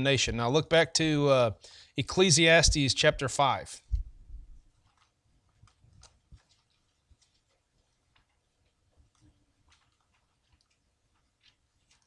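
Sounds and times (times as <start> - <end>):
thin pages being turned: 4.6 - 12.0.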